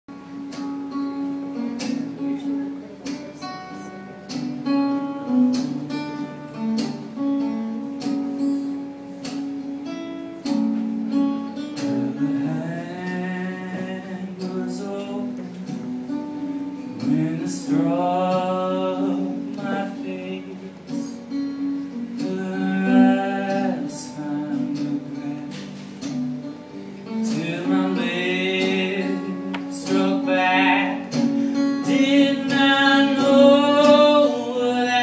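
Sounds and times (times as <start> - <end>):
acoustic guitar: 0.1 - 35.0
man singing: 11.8 - 26.2, 27.1 - 35.0.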